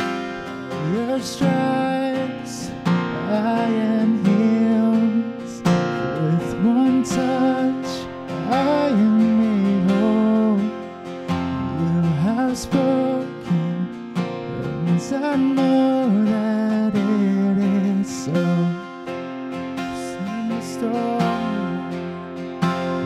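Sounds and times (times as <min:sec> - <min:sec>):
strummed acoustic guitar: 0:00.0 - 0:23.0
man singing: 0:00.4 - 0:19.0, 0:19.8 - 0:23.0.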